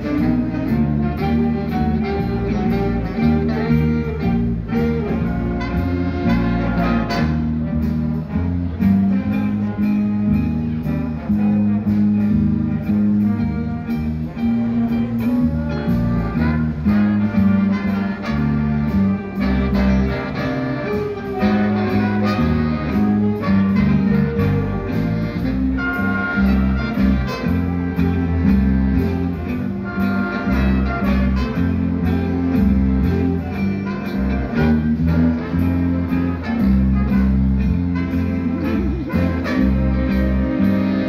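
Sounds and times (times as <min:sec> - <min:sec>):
bass line: 0:00.0 - 0:41.0
saxophones and brass: 0:00.0 - 0:41.0.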